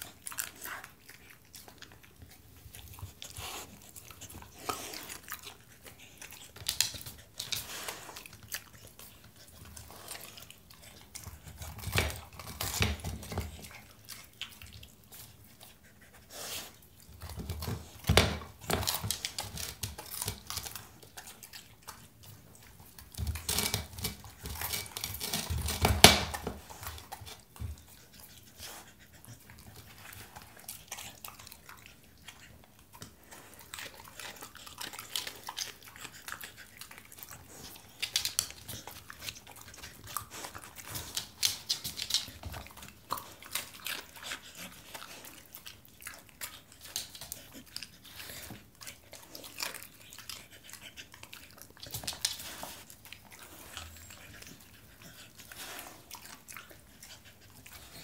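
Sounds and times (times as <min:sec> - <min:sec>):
dog crunching and chewing vegetables: 0:00.0 - 0:58.0.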